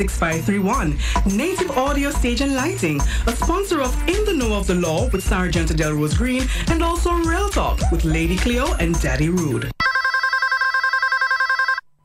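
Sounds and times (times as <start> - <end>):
electronic telephone ring: 9.8 - 12.0.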